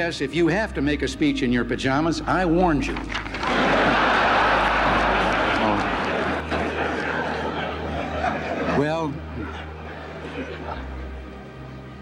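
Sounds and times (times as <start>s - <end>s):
large audience laughing: 3.3s - 11.3s.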